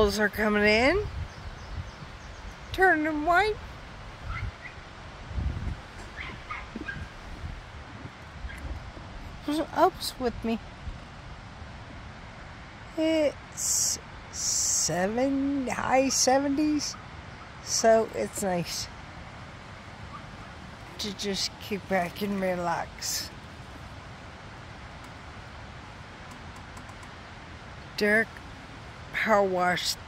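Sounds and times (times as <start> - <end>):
wind rumble on microphone: 0.0 - 30.0
dog barking and yipping: 6.1 - 7.1.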